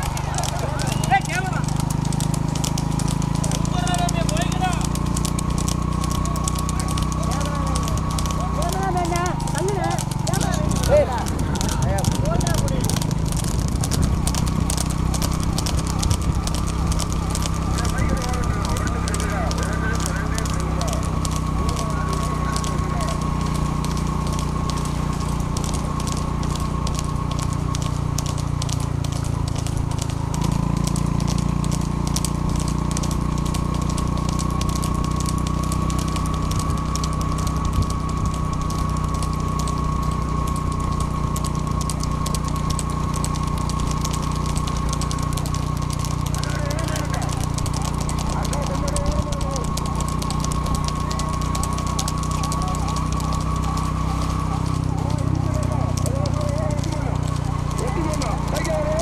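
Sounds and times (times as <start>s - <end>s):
continuous high tone: 0.0s - 59.0s
dense crackle: 0.0s - 59.0s
vehicle engine drone: 0.0s - 59.0s.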